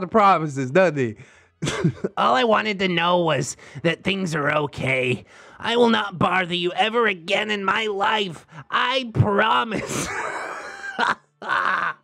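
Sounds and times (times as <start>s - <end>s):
person wheezing laughter: 9.8s - 12.0s.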